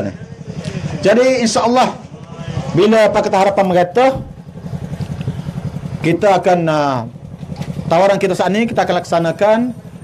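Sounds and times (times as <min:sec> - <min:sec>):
small engine running: 0:00.0 - 0:10.0
man speaking: 0:01.0 - 0:04.3, 0:06.0 - 0:07.2, 0:07.9 - 0:09.8.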